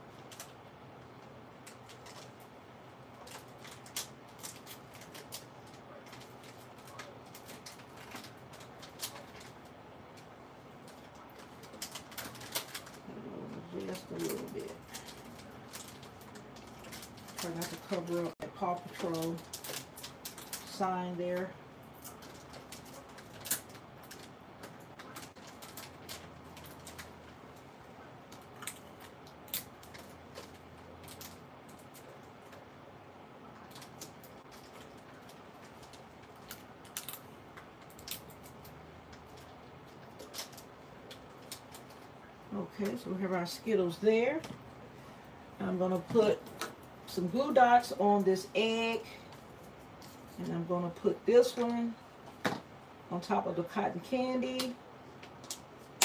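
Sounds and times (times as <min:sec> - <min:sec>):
plastic candy packets crinkling: 0:00.2 - 0:32.8, 0:33.5 - 0:44.5.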